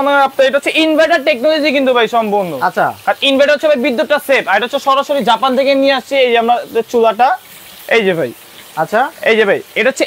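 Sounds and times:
fish sizzling in oil: 0.0s - 10.0s
man talking: 0.0s - 10.0s.

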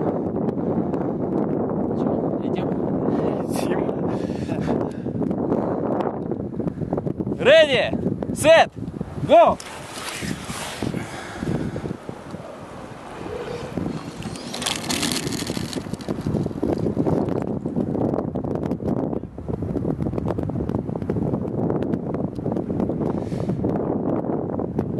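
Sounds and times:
wind buffeting microphone: 0.0s - 24.9s.

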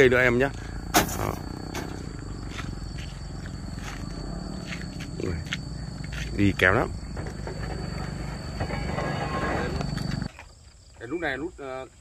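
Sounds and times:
motorcycle engine running: 0.0s - 10.3s.

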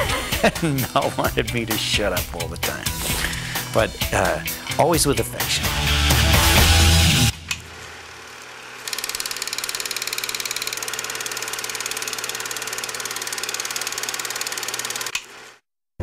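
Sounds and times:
fast mechanical clatter: 7.5s - 15.5s.

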